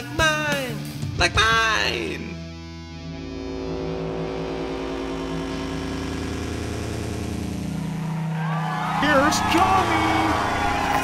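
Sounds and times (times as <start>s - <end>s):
low engine-like drone: 3.1s - 8.5s.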